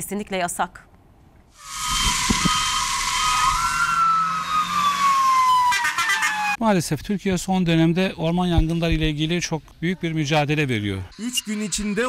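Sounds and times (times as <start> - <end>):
emergency vehicle siren wailing: 1.7 - 6.6.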